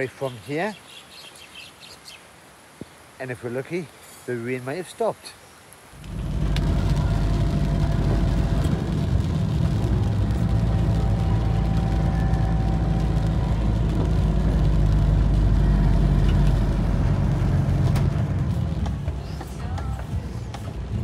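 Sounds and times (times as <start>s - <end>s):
car engine and tyre rumble: 5.8s - 21.0s.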